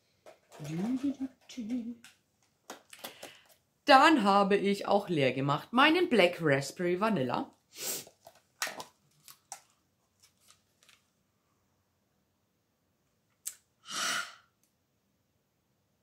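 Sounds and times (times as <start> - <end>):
person sniffing: 7.7 - 8.2, 13.8 - 14.6.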